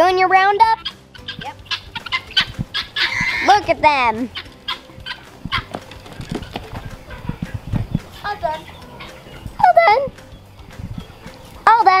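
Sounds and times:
poultry calls: 0:00.6 - 0:11.5
footsteps on dirt: 0:01.9 - 0:11.6.

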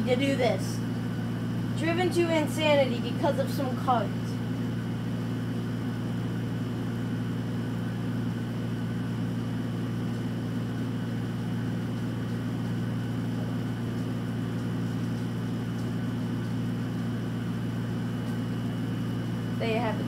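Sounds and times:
low machine hum: 0:00.0 - 0:20.0.

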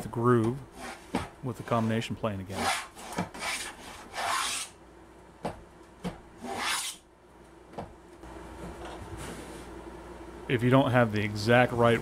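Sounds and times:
plane blade cutting wood: 0:00.8 - 0:04.7.

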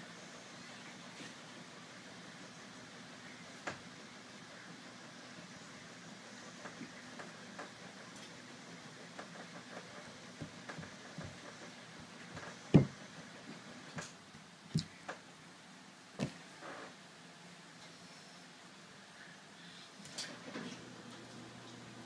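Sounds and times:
hands knocking on tabletop: 0:12.7 - 0:12.9.

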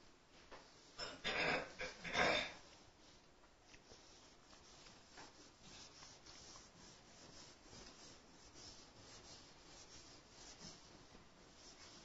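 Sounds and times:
duster swishing on a whiteboard: 0:00.3 - 0:01.0, 0:01.9 - 0:12.0.

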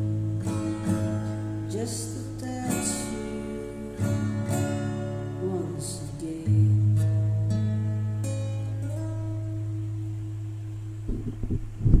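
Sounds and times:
acoustic guitar chord ringing: 0:00.0 - 0:11.8
steady low hum: 0:00.0 - 0:12.0.

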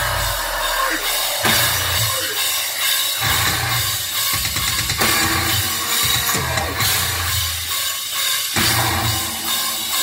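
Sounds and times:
cymbals: 0:00.0 - 0:10.0
drums: 0:00.0 - 0:10.0
metalcore band playing live: 0:00.0 - 0:10.0.

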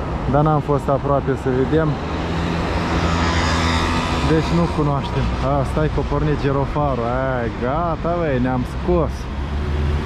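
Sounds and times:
traffic engine hum: 0:00.0 - 0:10.0
motor scooter passing: 0:01.9 - 0:05.5.

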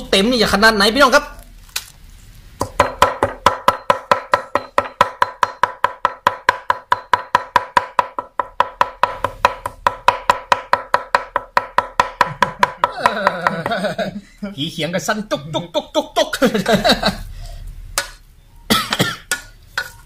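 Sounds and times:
cleaver chopping on wooden block: 0:02.6 - 0:13.5.

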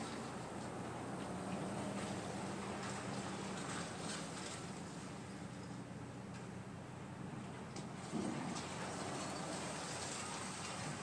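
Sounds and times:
tyres hissing on road: 0:07.9 - 0:11.0.

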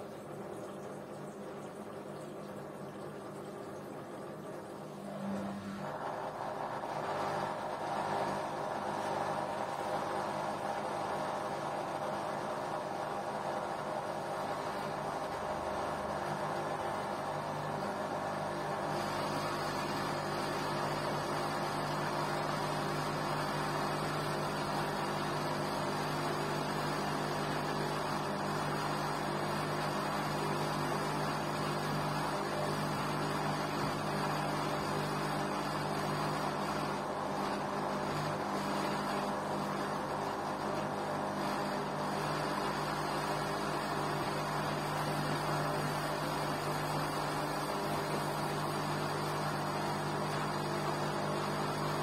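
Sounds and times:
washing machine motor hum: 0:00.0 - 0:52.0.

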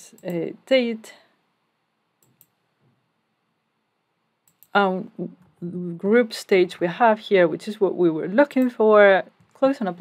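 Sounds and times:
faint computer mouse clicks: 0:02.2 - 0:02.6, 0:04.4 - 0:04.8.

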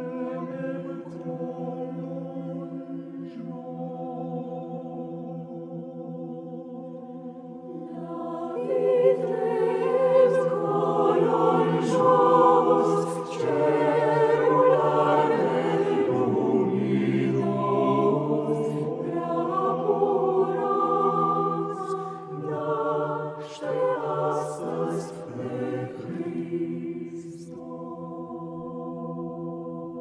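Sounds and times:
mixed choir singing unaccompanied: 0:00.0 - 0:30.0.

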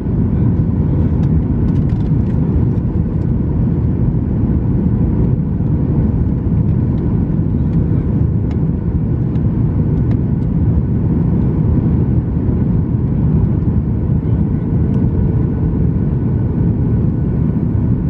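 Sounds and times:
airplane cabin engine rumble: 0:00.0 - 0:18.0.

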